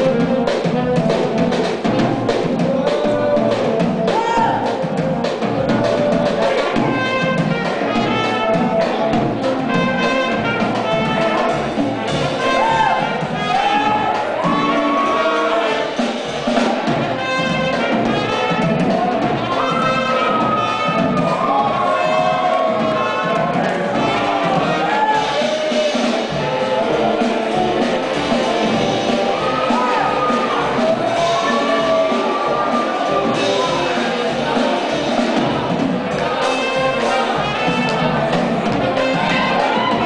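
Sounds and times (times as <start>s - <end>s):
horn lines: 0.0s - 40.0s
steady drum beat: 0.0s - 40.0s.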